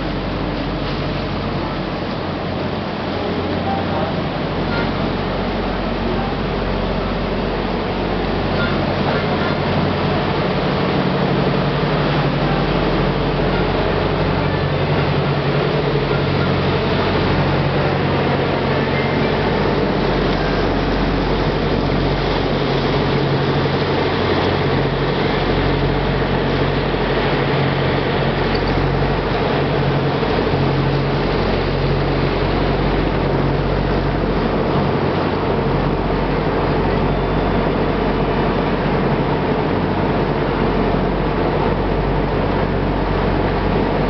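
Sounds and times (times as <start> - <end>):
boat engine humming: 0.0 - 44.0
rushing water and air: 0.0 - 44.0.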